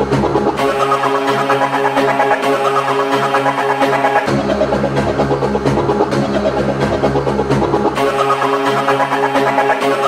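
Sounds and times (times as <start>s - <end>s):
rave music with synth tones: 0.0s - 10.0s.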